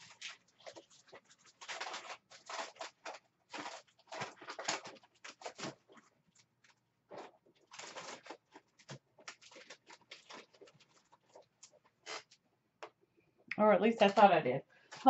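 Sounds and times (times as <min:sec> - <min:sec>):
paper rustling and shuffling: 0:00.0 - 0:12.4.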